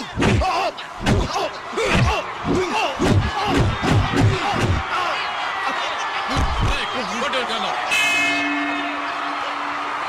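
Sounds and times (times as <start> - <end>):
punch and kick impacts: 0.2 - 4.9.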